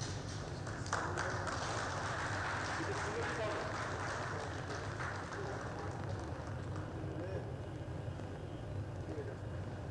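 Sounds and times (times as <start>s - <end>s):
murmur of distant voices: 0.0s - 9.9s
steady low hum: 0.0s - 9.9s.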